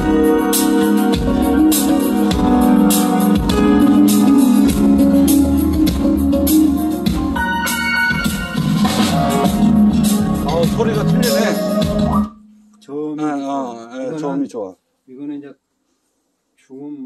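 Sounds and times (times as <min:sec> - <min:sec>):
music over pa speakers: 0:00.0 - 0:12.8.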